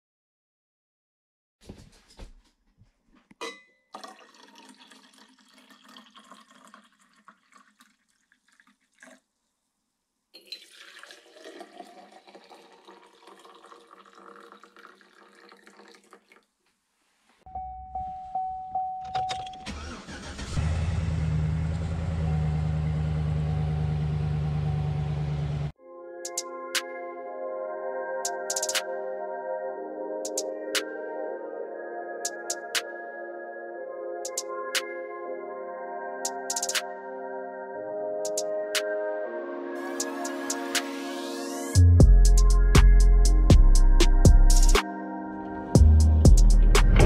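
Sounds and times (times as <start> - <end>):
coffee pouring into tumbler: 4.0 - 9.3, 10.4 - 16.4
truck engine starting and idling: 19.2 - 25.7.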